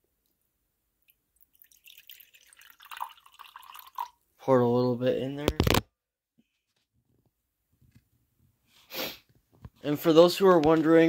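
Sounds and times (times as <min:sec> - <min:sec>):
drink dripping: 0:01.0 - 0:04.2
drink pouring into a mug: 0:01.4 - 0:04.2.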